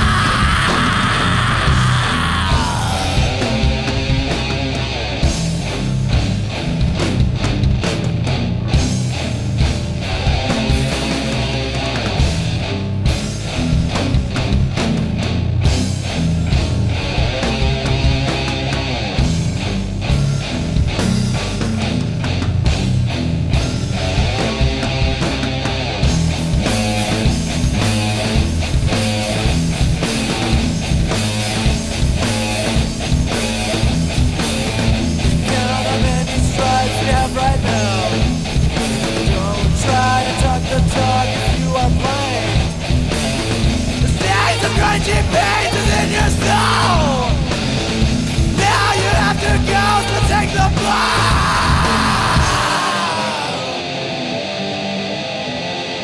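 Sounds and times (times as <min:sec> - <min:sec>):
steady drum beat: 0:00.0 - 0:53.4
bass guitar: 0:00.0 - 0:56.0
distorted electric guitar riff: 0:00.0 - 0:56.0
heavy rock band playing: 0:00.0 - 0:56.0.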